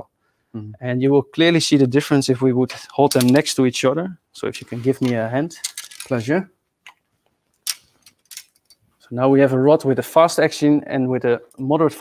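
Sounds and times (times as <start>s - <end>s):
fishing rods clicking and rustling: 2.7s - 3.5s, 4.9s - 6.3s, 6.9s - 8.8s.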